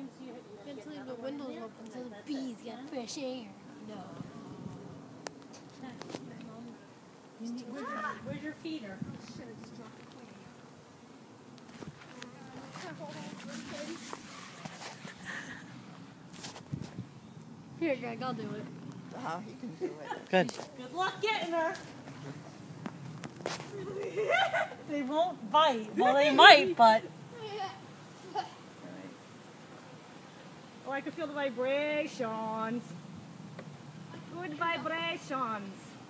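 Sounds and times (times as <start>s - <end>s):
honeybees buzzing: 0.0s - 36.0s.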